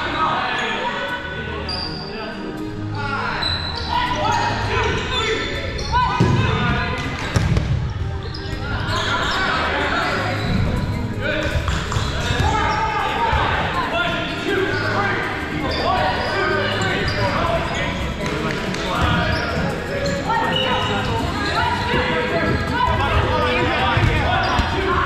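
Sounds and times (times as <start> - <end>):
players shouting in echoing gym: 0.0 - 25.0
balls bouncing on wooden floor: 6.2 - 8.6, 11.4 - 13.6, 21.9 - 25.0.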